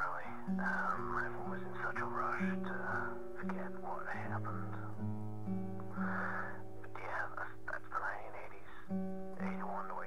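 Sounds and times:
man whispering: 0:00.0 - 0:05.0, 0:05.9 - 0:10.0
music of held low notes: 0:00.0 - 0:10.0.

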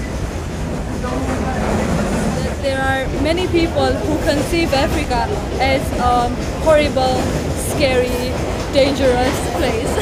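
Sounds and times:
train rumbling on track: 0:00.0 - 0:10.0.

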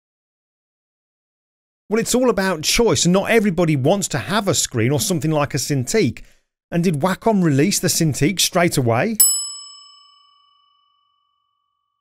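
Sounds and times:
bell-like chime: 0:09.2 - 0:12.0.

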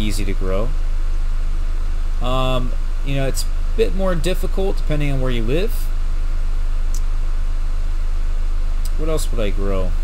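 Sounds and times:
low electrical hum with hiss: 0:00.0 - 0:10.0.

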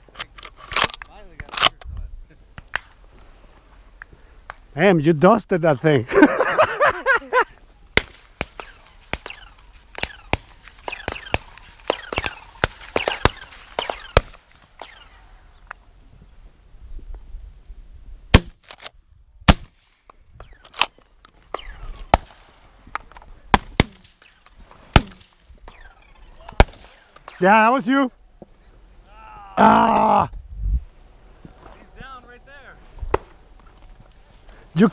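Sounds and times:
shotgun shots: 0:08.0 - 0:15.0, 0:18.3 - 0:18.9, 0:19.5 - 0:19.9, 0:23.5 - 0:27.4.

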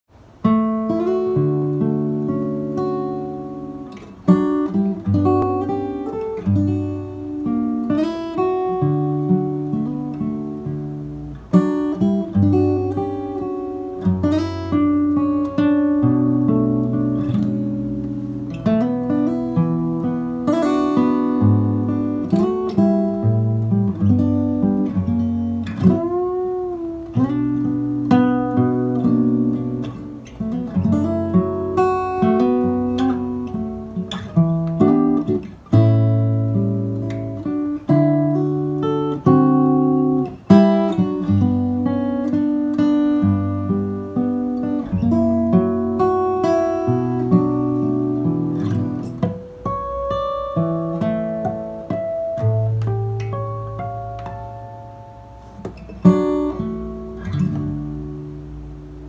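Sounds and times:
fingerstyle acoustic guitar: 0:00.1 - 0:59.0.

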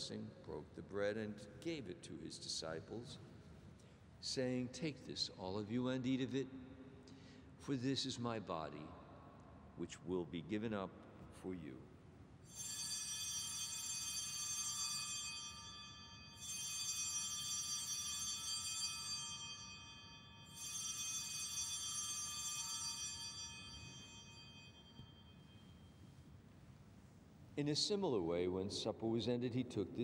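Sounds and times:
altar bells ringing: 0:12.5 - 0:26.2.

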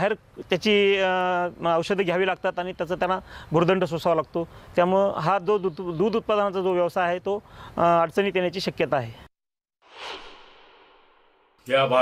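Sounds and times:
transition whoosh: 0:09.8 - 0:11.6.

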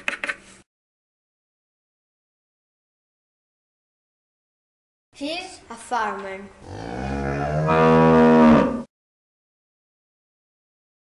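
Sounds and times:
cow mooing: 0:06.6 - 0:08.9.

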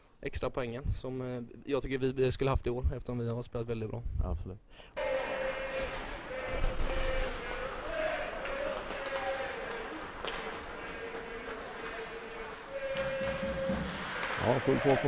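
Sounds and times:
arena crowd noise: 0:05.0 - 0:15.0
hockey sticks and puck clacking: 0:05.0 - 0:15.0.

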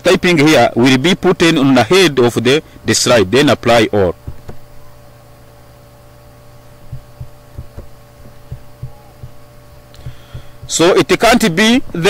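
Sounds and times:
steady low hum: 0:00.0 - 0:12.0
soft low thumps: 0:04.2 - 0:04.9, 0:06.7 - 0:11.0.

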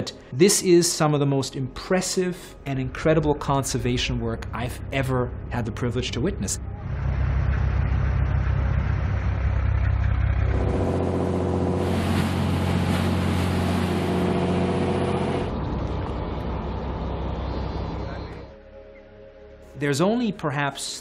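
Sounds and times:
motor engines droning: 0:05.3 - 0:18.6.

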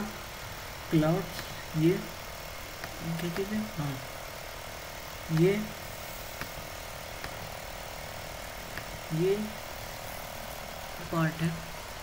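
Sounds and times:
steady background hum: 0:00.0 - 0:12.0
person speaking: 0:00.9 - 0:02.2, 0:02.9 - 0:04.1, 0:05.2 - 0:05.8, 0:09.0 - 0:09.7, 0:11.0 - 0:11.8.

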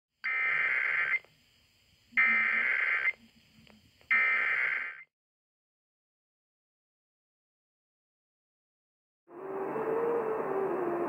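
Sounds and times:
digital data tone bursts: 0:00.3 - 0:01.3, 0:02.2 - 0:03.2, 0:04.1 - 0:05.1.

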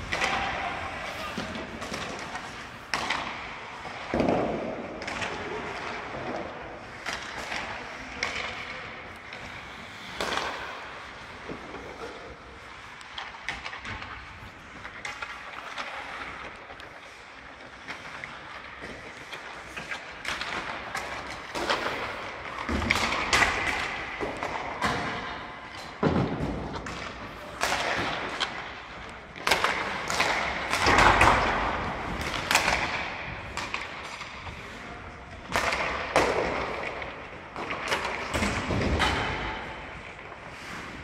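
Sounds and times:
pucks and sticks clacking: 0:00.0 - 0:41.0
skates scraping on ice: 0:00.0 - 0:41.0.

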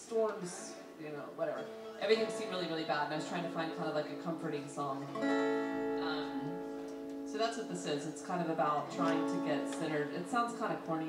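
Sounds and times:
acoustic guitar strum ringing: 0:01.6 - 0:11.0.

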